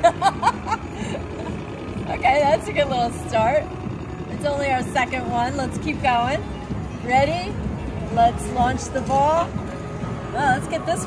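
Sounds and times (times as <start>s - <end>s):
woman laughing: 0.0s - 1.8s
slot machines humming: 0.0s - 11.0s.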